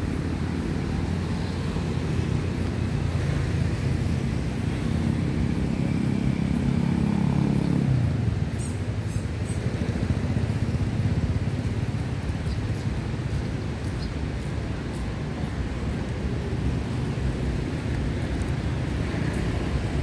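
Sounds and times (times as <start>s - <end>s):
low traffic rumble: 0.0s - 20.0s.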